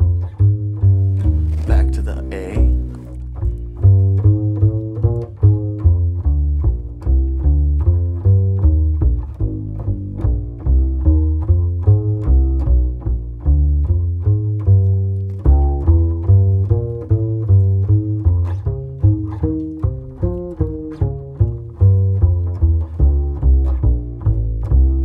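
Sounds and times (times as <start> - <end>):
plucked double bass notes: 0.0 - 25.0.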